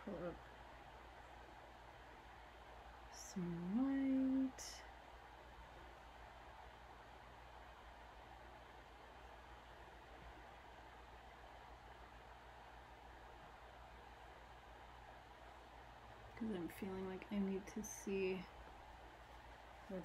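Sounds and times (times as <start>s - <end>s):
faint low hum: 0.0s - 20.0s.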